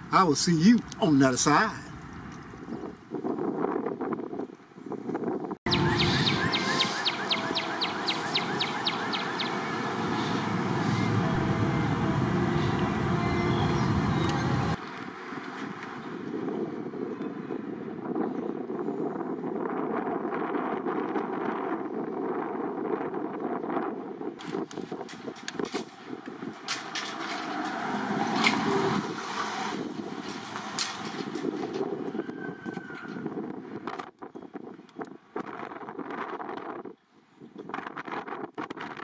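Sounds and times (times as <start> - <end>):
road traffic: 0.0 - 22.7, 23.7 - 34.2
wind buffeting microphone: 0.6 - 39.0.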